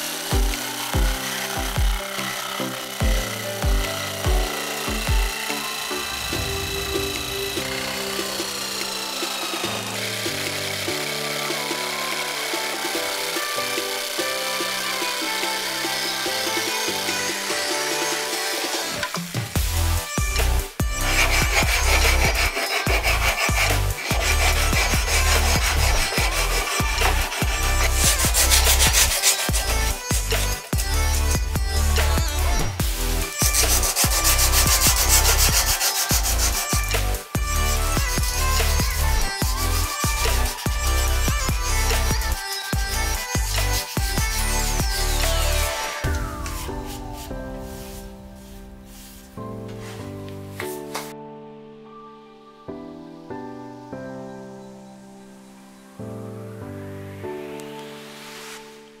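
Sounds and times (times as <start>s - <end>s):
background music with heavy beat: 0.0s - 11.8s, 12.5s - 49.6s
jigsaw cutting wood: 0.0s - 46.1s.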